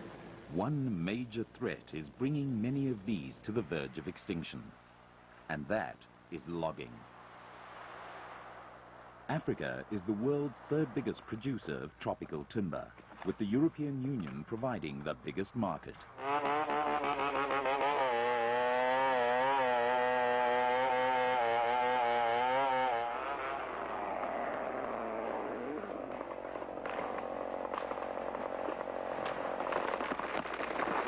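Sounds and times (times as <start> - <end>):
chainsaw cutting tree trunk: 16.2 - 31.0
tree falling with cracking wood: 23.2 - 31.0.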